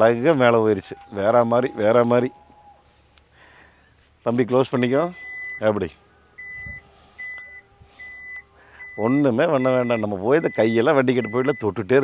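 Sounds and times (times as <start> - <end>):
warning buzzer beeping: 4.7 - 12.0.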